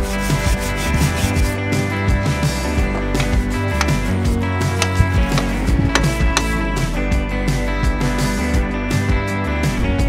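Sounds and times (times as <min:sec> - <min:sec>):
brush scrubbing metal ladder: 0:00.0 - 0:01.6, 0:02.8 - 0:04.2
background music: 0:00.0 - 0:10.0.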